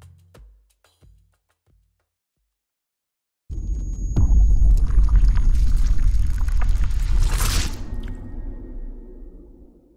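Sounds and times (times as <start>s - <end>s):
deep rumble: 3.5s - 9.9s
scattered crackles: 4.2s - 8.4s.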